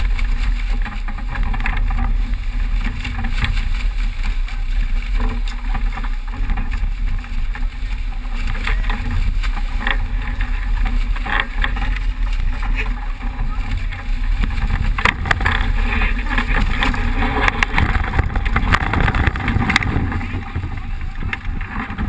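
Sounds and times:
knocks and splashes: 0.0s - 22.0s
water rushing past hull: 0.0s - 22.0s
wind buffeting microphone: 0.0s - 22.0s.

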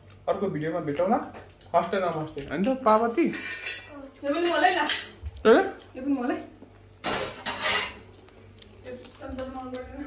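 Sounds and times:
dishes and cutlery clinking: 1.4s - 5.4s, 7.0s - 8.2s.

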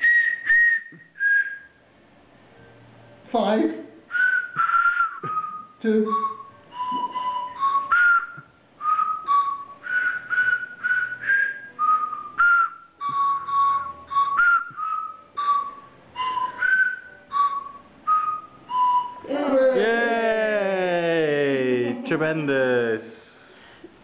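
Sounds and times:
tuned whistles playing a tune: 0.0s - 1.9s, 4.1s - 19.4s.

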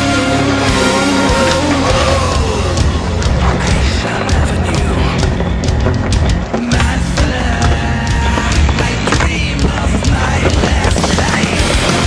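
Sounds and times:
loud heavy rock music: 0.0s - 12.0s
skateboard wheels rolling on concrete: 0.0s - 12.0s
skateboard clacks: 2.7s - 12.0s.

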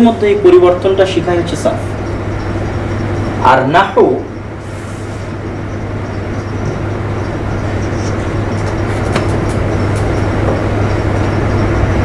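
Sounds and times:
low hum: 0.0s - 12.0s
rushing background noise: 0.0s - 12.0s.

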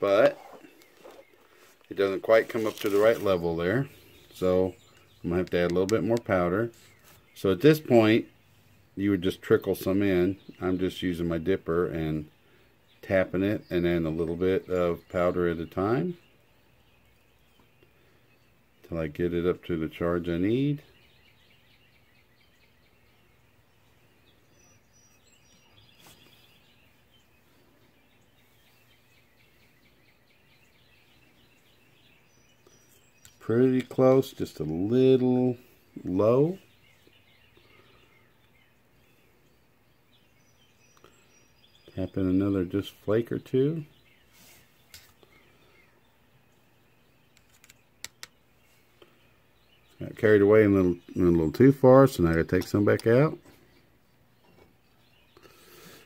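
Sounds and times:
sharp clicks: 47.3s - 48.4s.

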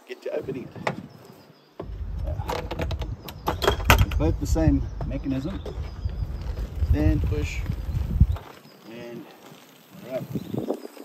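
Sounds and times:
steady low rumble: 1.8s - 8.4s.

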